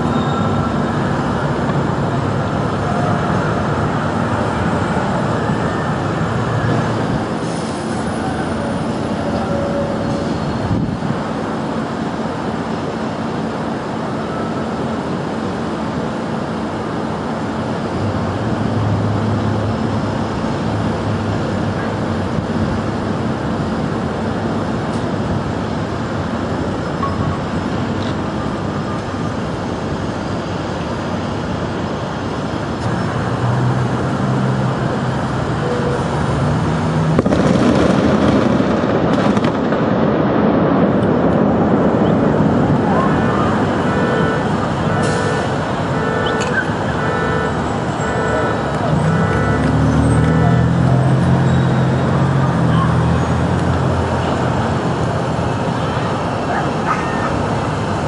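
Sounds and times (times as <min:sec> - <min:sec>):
street noise: 0:00.0 - 0:58.0
rumbling explosion blast: 0:37.1 - 0:44.0
voices: 0:42.0 - 0:51.3, 0:54.0 - 0:58.0.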